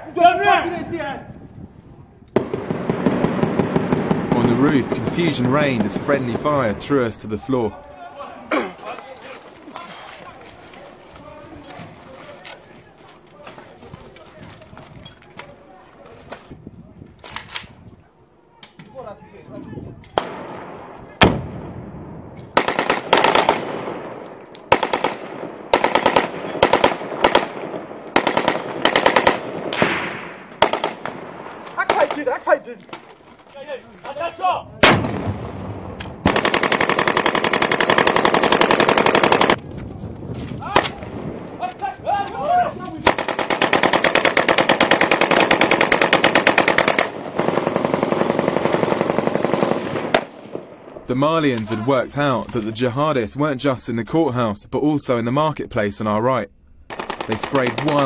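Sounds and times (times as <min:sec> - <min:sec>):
automatic weapons fire: 0:02.4 - 0:06.6, 0:20.2 - 0:24.1, 0:24.7 - 0:32.3, 0:34.8 - 0:39.6, 0:43.0 - 0:50.9, 0:56.9 - 0:58.0.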